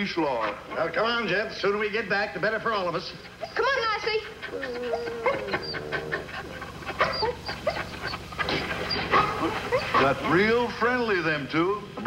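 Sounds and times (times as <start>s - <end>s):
dogs barking and whining: 2.8s - 10.6s
dog howling: 3.4s - 10.0s.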